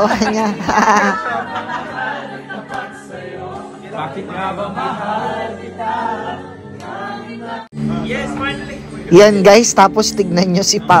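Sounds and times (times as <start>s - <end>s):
group of people singing: 0.8s - 8.4s.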